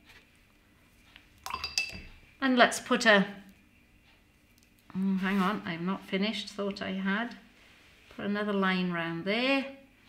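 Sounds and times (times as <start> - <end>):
paintbrush clinking on container: 1.4 - 2.2.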